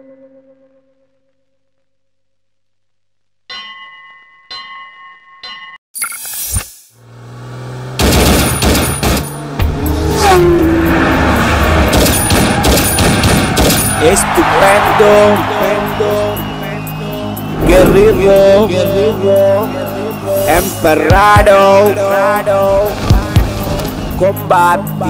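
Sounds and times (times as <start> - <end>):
engine-like whines: 7.0 - 12.7, 15.1 - 24.2
gunfire-like bangs: 8.0 - 9.5, 11.8 - 14.0
whoosh: 17.4 - 19.4.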